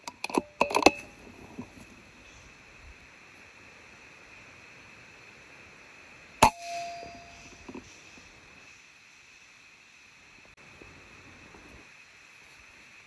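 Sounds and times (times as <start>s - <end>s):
high-pitched background drone: 6.4s - 7.8s.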